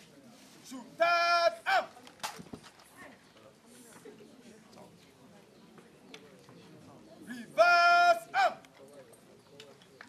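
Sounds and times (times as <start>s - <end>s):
low murmur of crowd: 0.0s - 10.0s.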